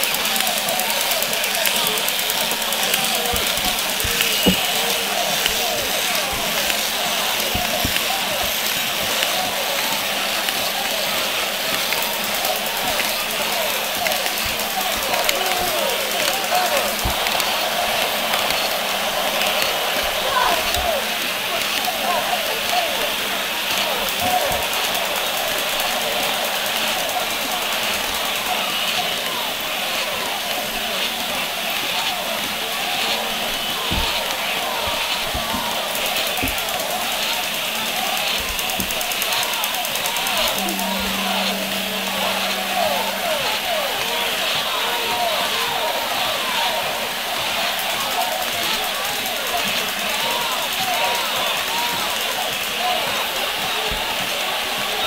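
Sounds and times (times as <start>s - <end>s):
indistinct voices: 0.0s - 55.0s.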